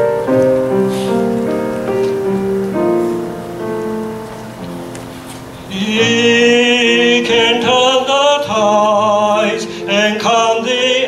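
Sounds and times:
piano playing slow chords: 0.0s - 11.0s
man singing: 5.7s - 11.0s.

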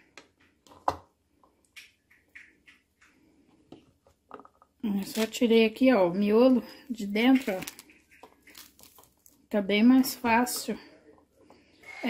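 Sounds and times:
pomegranate seeds clicking into bowl: 7.2s - 9.4s.

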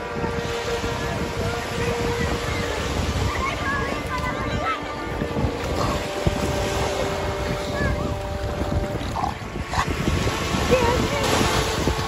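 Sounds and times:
faint voices: 0.0s - 12.0s
surf: 0.0s - 12.0s
wind buffeting microphone: 0.0s - 12.0s.

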